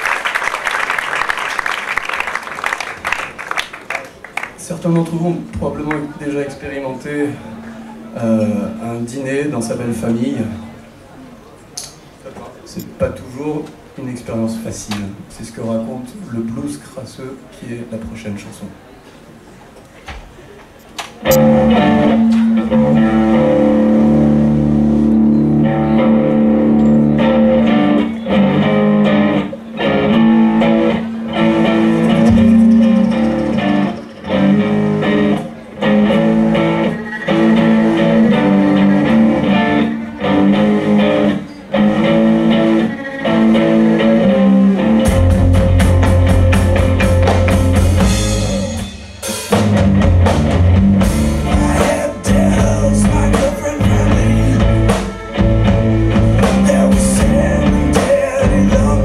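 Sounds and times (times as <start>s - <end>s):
electric guitar riff: 21.2s - 59.0s
drums and heavy bass: 31.3s - 35.3s, 44.9s - 59.0s.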